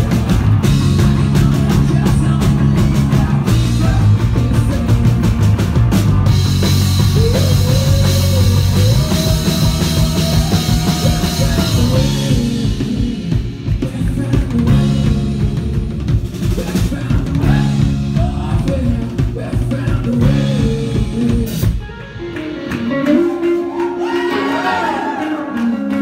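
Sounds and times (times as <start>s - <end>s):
person singing: 0.0s - 5.3s, 6.7s - 26.0s
drum kit: 0.0s - 26.0s
electric guitars: 0.0s - 26.0s.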